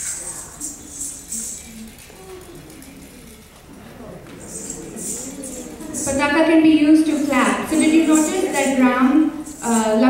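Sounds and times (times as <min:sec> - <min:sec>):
soft voices: 0:00.0 - 0:10.0
ankle bells jingling: 0:07.4 - 0:10.0.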